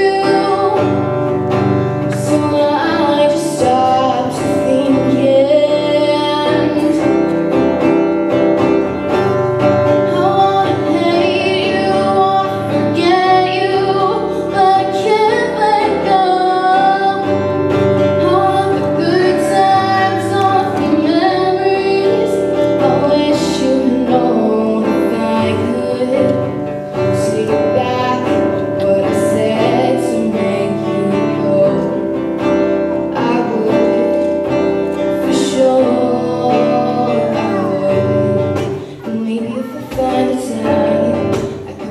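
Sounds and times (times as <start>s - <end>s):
acoustic guitar strumming: 0.0s - 41.9s
girl singing: 0.0s - 41.9s.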